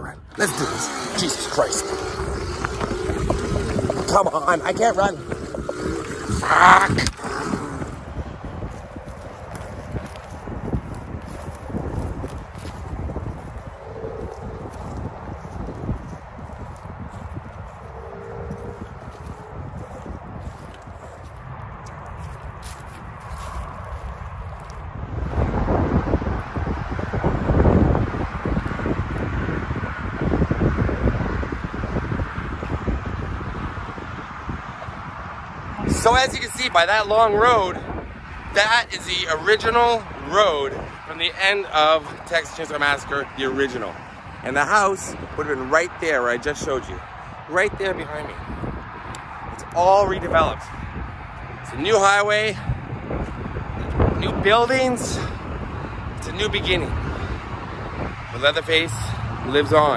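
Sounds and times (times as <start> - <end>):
wind buffeting microphone: 0.0 - 59.9
fast footsteps on grass and road: 1.2 - 59.9.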